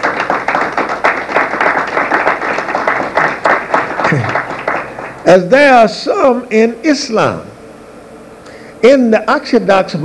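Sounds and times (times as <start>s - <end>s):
audience clapping: 0.0s - 5.5s.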